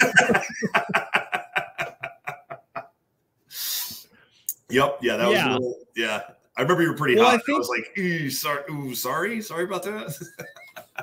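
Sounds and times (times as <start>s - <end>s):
man laughing heartily: 0.0s - 3.0s, 10.1s - 11.0s.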